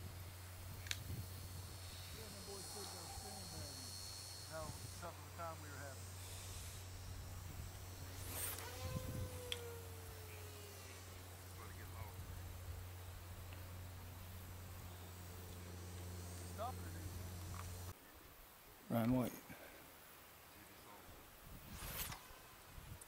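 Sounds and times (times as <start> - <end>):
wind on microphone: 0.0 - 3.8, 6.0 - 11.3, 21.4 - 23.0
distant voices: 0.0 - 18.0.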